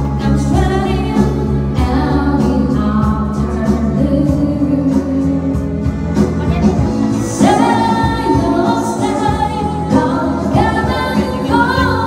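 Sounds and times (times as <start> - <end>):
backing music: 0.0 - 12.0
woman singing into a microphone: 0.0 - 12.0.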